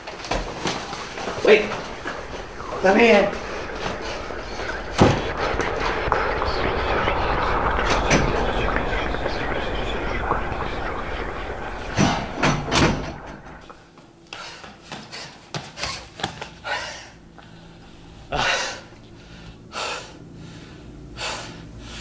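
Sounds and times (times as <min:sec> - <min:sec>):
breathy panting: 0:16.6 - 0:22.0.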